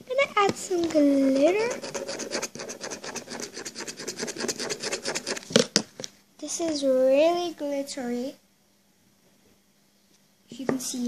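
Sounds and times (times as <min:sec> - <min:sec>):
marker tip scratching on shell: 0:01.4 - 0:05.5.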